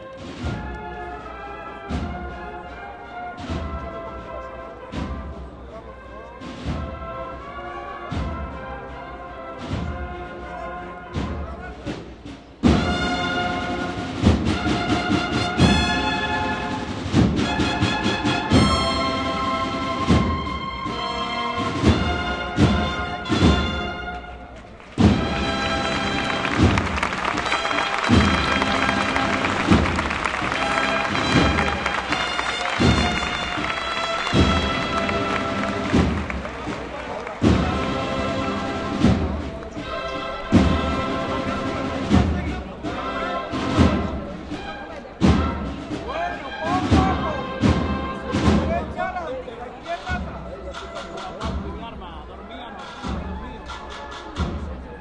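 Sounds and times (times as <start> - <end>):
heavy drum strokes: 0.0 - 2.7, 3.3 - 7.5, 8.1 - 52.2
brass chords: 0.0 - 55.0.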